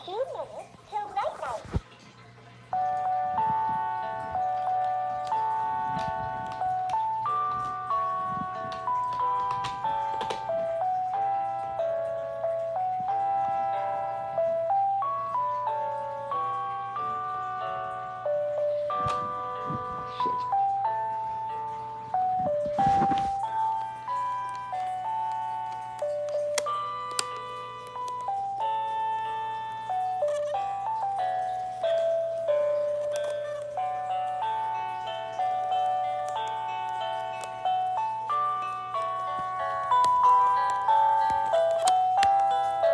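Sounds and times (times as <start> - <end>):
toy playing electronic chime melody: 2.7 - 42.9.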